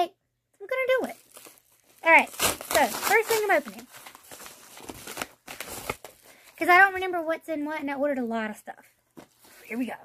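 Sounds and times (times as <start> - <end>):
package rustling: 1.0 - 6.8.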